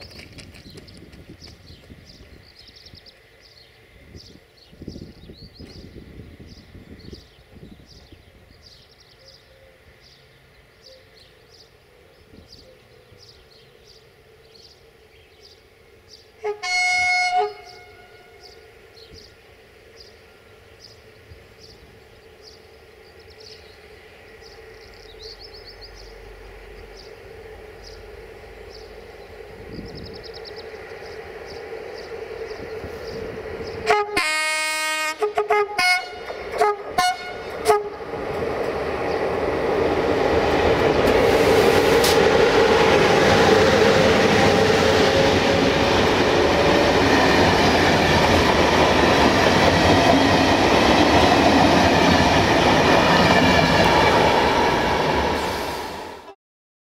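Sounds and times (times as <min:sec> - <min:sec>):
train wheels rumbling on rails: 0:00.0 - 0:08.9, 0:15.4 - 0:34.4, 0:35.2 - 0:56.4
locomotive horn blasts: 0:16.4 - 0:18.5, 0:33.8 - 0:38.0.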